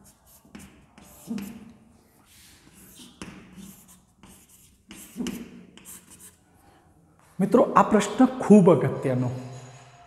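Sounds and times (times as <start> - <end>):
chalk scratching on blackboard: 0.0 - 6.4.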